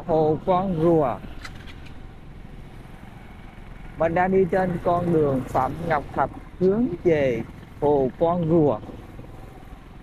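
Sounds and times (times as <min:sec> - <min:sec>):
road noise rumble and hiss: 0:00.0 - 0:10.0.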